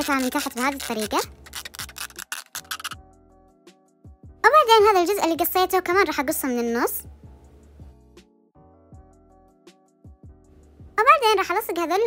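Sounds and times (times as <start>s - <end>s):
plastic bottle cut with blade: 0.0s - 3.0s
soft background music: 0.0s - 12.0s.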